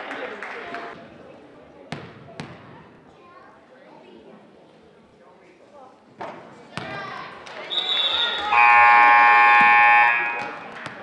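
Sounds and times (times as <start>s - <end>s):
voices in a hall: 0.0s - 11.0s
scoreboard buzzer: 8.5s - 10.6s.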